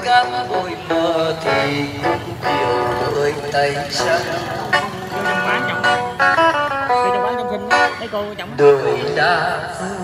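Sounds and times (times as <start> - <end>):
man singing: 0.0 - 6.0, 8.1 - 10.0
electric guitar: 0.0 - 10.0.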